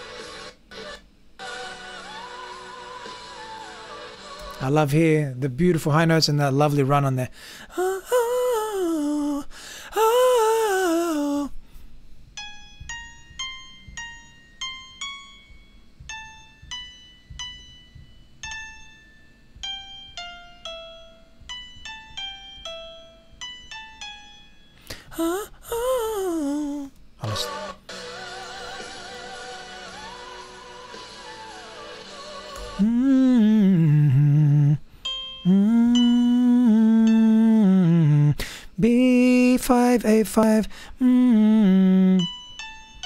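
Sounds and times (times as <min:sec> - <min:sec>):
person singing falling phrase: 0:07.7 - 0:11.6, 0:25.1 - 0:27.6, 0:32.6 - 0:34.8, 0:35.5 - 0:42.3.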